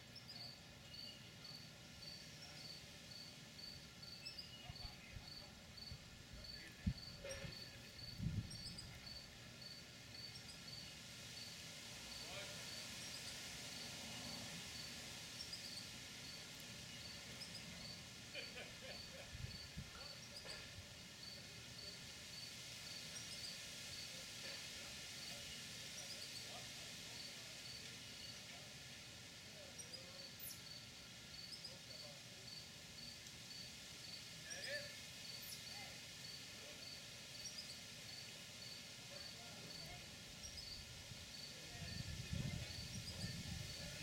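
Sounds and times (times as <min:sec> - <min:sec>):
low background hiss: 0:00.0 - 0:44.0
insect chirping: 0:00.2 - 0:28.4, 0:29.6 - 0:44.0.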